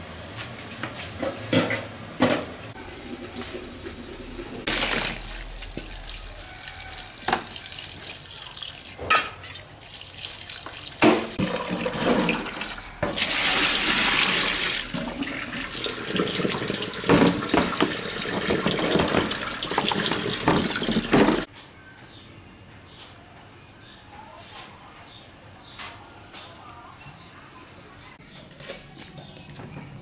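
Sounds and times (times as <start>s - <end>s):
tap water running into sink: 2.3s - 21.5s
water splashing: 2.8s - 21.5s.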